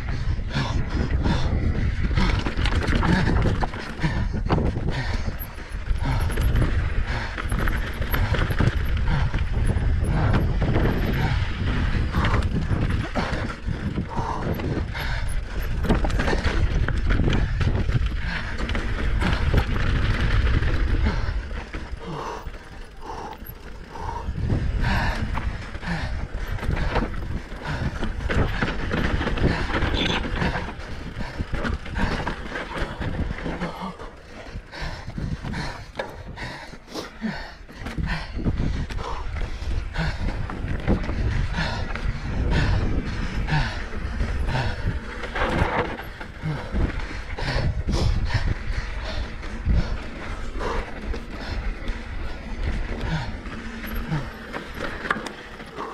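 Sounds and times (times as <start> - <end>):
wind on microphone: 0.0 - 22.4, 23.0 - 33.7, 37.8 - 55.2
bike chain and frame rattling: 0.0 - 55.9
tyres rumbling over stones: 1.0 - 36.4, 39.7 - 55.9
rear hub ratcheting clicks: 2.2 - 24.5.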